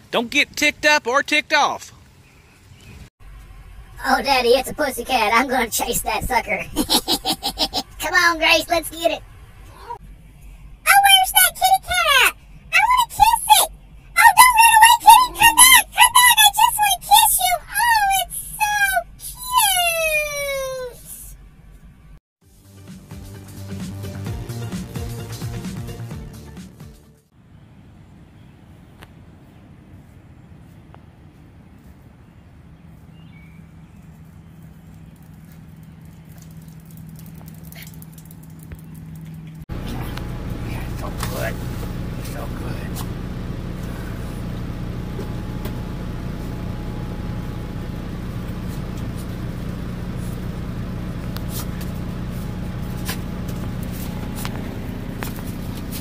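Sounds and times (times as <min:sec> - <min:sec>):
low steady hum: 0:03.2 - 0:20.3, 0:31.0 - 0:56.0.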